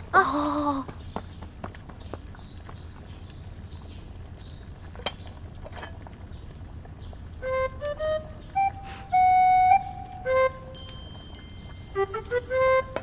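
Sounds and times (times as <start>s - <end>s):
flute melody: 7.4s - 13.0s
high ringing notes: 9.7s - 13.0s.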